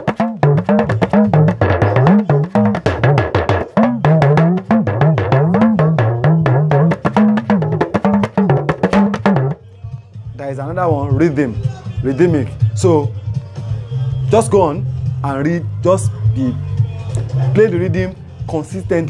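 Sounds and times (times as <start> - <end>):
talking drum struck rapidly: 0.0 - 9.6.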